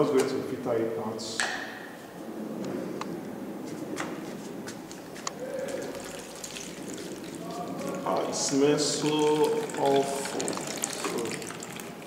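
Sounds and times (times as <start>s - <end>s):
liquid pouring and trickling: 5.5s - 12.0s.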